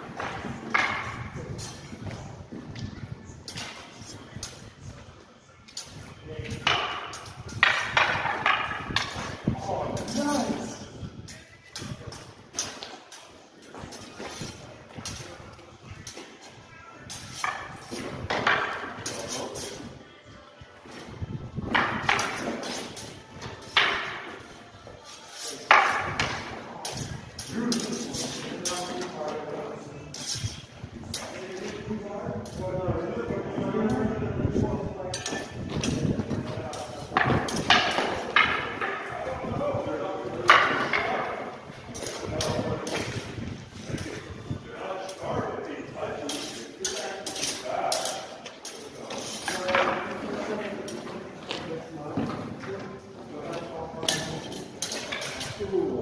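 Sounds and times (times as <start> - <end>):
voices: 0.0 - 56.0
wooden sticks clacking: 0.1 - 1.9, 5.7 - 10.6, 21.7 - 24.5, 25.1 - 29.2, 35.1 - 39.2, 40.4 - 43.3, 46.2 - 51.1, 53.5 - 55.6.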